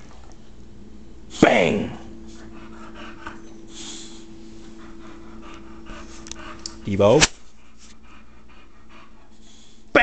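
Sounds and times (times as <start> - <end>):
dog panting softly: 2.2 - 9.9.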